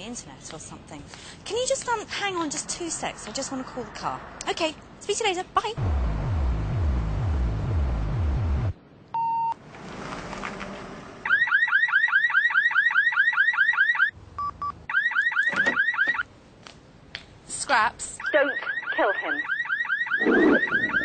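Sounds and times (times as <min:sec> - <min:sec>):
loud low rumble: 0:05.8 - 0:08.8
car alarm siren whooping: 0:11.2 - 0:14.1, 0:14.9 - 0:16.2, 0:18.2 - 0:21.0.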